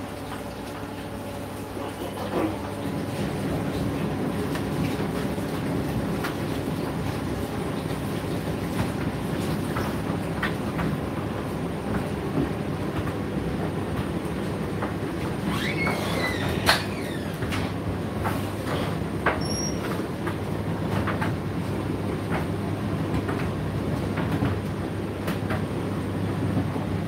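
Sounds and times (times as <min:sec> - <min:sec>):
tumble dryer running: 0:00.0 - 0:27.0
brief squeak: 0:15.5 - 0:17.1, 0:19.4 - 0:19.9.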